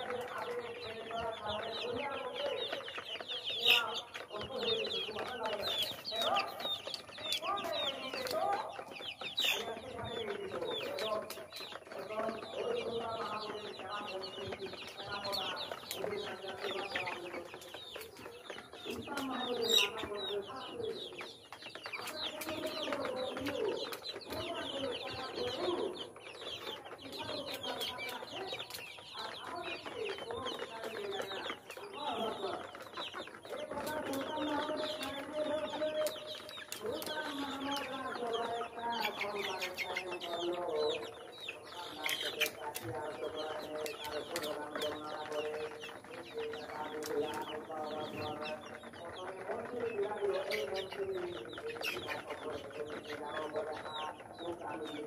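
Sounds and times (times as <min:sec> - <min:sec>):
chicks peeping: 0:00.0 - 0:55.0
hens clucking: 0:00.0 - 0:55.0.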